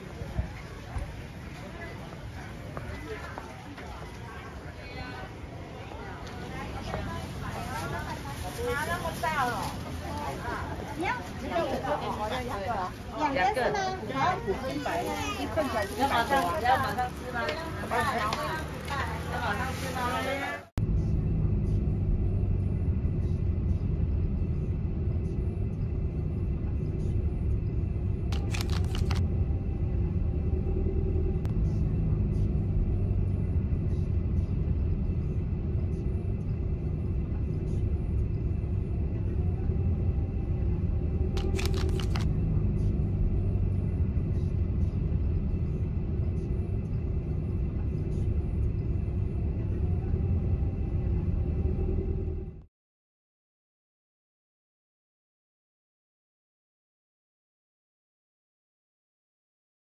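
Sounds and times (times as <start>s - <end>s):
car tyre and engine rumble: 0.0s - 52.7s.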